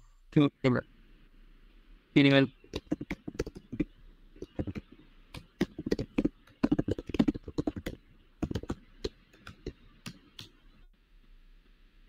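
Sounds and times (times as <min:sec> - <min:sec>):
typing on computer keyboard: 0:02.7 - 0:10.5.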